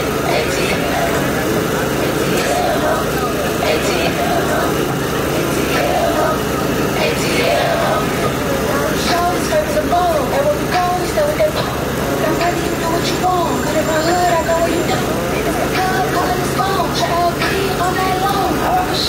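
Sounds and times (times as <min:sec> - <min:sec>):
indistinct voices: 0:00.0 - 0:19.0
motor running: 0:00.0 - 0:19.0.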